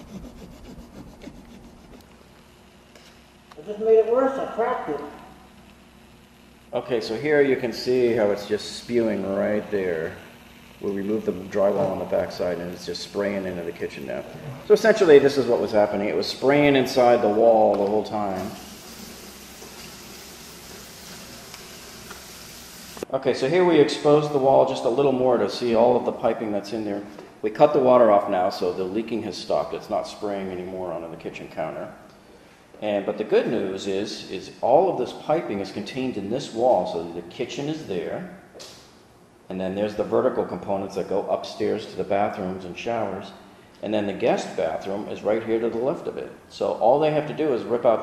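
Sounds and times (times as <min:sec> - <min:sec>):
drywall being scraped: 0:00.0 - 0:02.1
water hissing from leaking pipe: 0:18.1 - 0:23.1.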